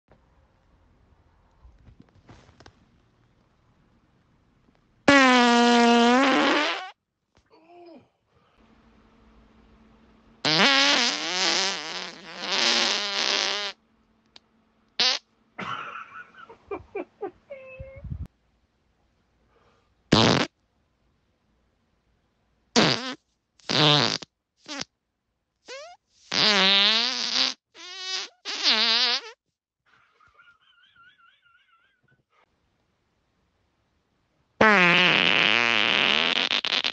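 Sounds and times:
fart: 5.1s - 7.0s, 10.4s - 13.8s, 15.0s - 15.3s, 20.1s - 20.6s, 22.8s - 24.9s, 25.7s - 29.4s, 34.6s - 36.9s.

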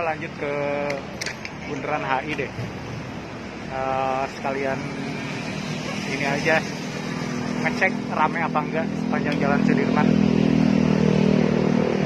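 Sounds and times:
motor traffic on city street: 0.0s - 12.0s.

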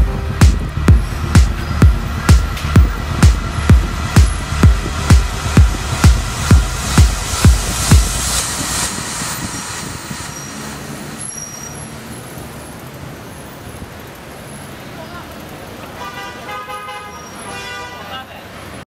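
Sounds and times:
background music: 0.0s - 10.3s
street traffic: 0.0s - 18.9s.

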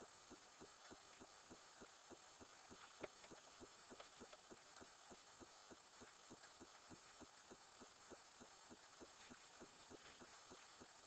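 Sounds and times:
faint regular pulsing: 0.0s - 11.0s.

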